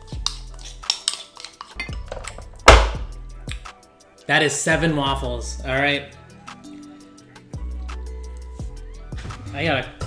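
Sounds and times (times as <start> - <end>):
spoon clinking against bowl: 0.2 - 2.4
background music with bass line: 1.8 - 4.0, 4.7 - 10.0.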